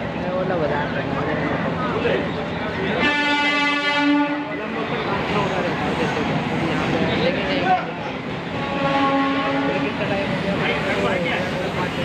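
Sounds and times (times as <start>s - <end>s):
street crowd chatter: 0.0s - 12.0s
horn sounding: 3.0s - 4.6s, 8.6s - 9.9s.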